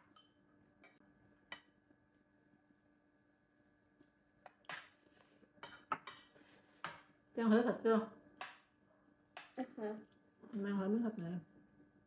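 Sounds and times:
spoon and chopsticks clinking bowls: 0:00.0 - 0:01.8, 0:05.6 - 0:06.4
faint steady hum: 0:00.0 - 0:12.0.

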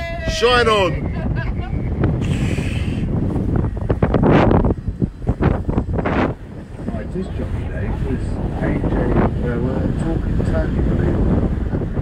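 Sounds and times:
boat engine rumble: 0:00.0 - 0:12.0
wind buffeting microphone: 0:00.0 - 0:12.0.

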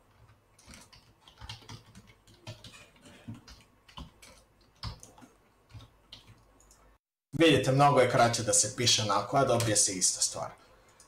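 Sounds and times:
keyboard typing: 0:00.1 - 0:06.9.

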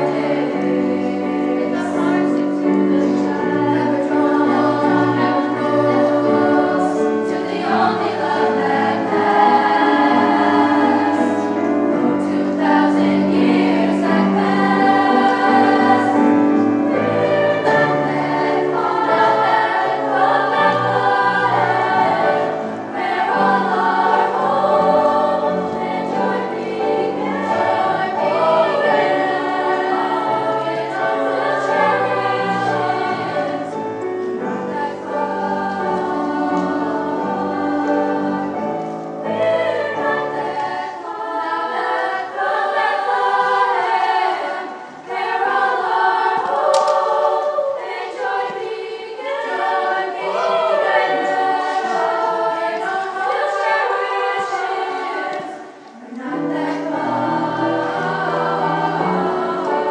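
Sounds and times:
women's choir singing: 0:00.0 - 0:59.9.

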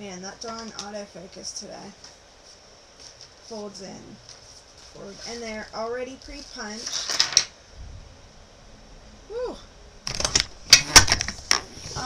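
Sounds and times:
hands tapping paper album: 0:00.4 - 0:01.0.

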